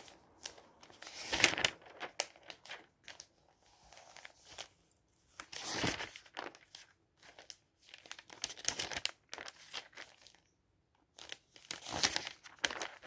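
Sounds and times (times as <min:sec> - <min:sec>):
glossy pages turning and rustling: 0:00.0 - 0:10.5, 0:11.2 - 0:13.0.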